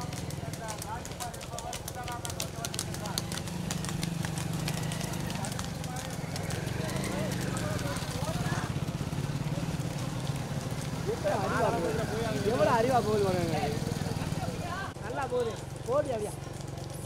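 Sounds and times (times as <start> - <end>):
faint shouting voices: 0.0 - 16.5
hooves clopping on road: 0.0 - 17.0
motorcycle engine running: 0.0 - 17.0.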